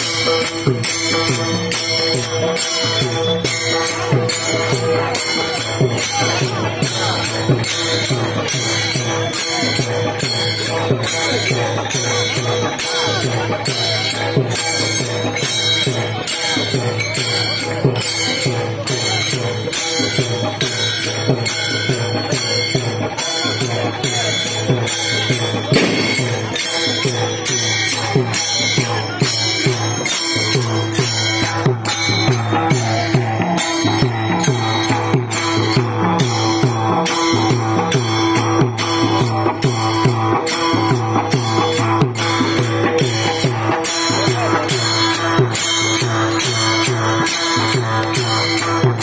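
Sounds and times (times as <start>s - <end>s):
barrel drum playing fast rhythm: 0.0s - 49.0s
hand cymbals clashing: 0.0s - 49.0s
barrel drum beating: 25.7s - 27.2s.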